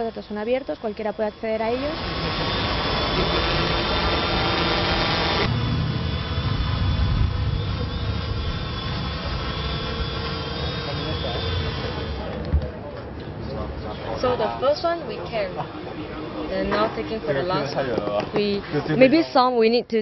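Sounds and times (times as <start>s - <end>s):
drone propellers whining: 0.0s - 18.9s
low rumble: 2.0s - 11.0s.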